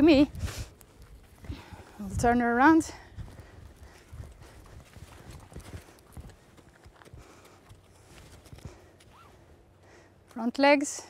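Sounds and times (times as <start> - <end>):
horse hooves on sand: 0.0 - 9.5.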